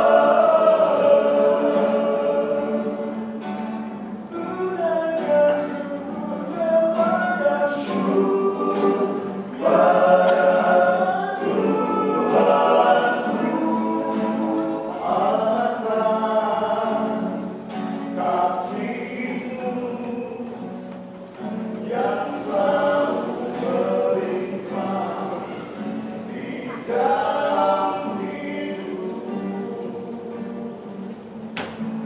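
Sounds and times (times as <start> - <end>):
male group singing a hymn: 0.0 - 20.7, 21.5 - 31.1
strummed acoustic guitar: 0.0 - 32.0.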